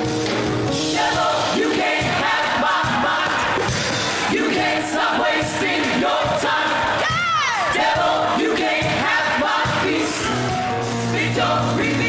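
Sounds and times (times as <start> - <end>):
congregation singing with band: 0.6 - 12.0
person shouting loudly: 7.0 - 7.7.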